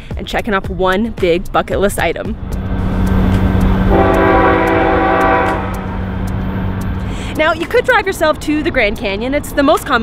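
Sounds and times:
low rumble: 2.2 - 7.4
train horn blast: 3.9 - 6.1.

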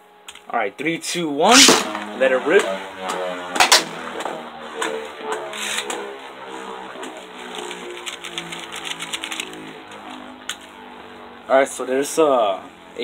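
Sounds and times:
spinning top whirring: 1.4 - 11.5
quick patter of ticks: 7.0 - 10.2.

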